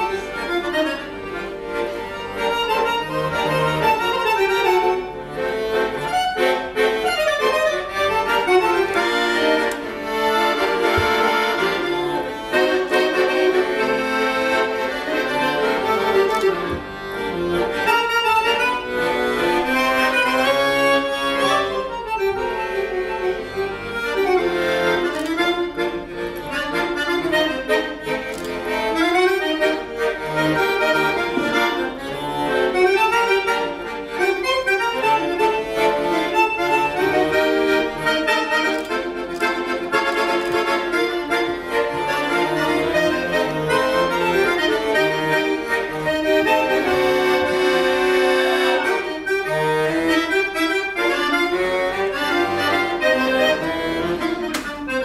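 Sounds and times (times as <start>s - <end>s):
button accordion playing: 0.0s - 55.0s.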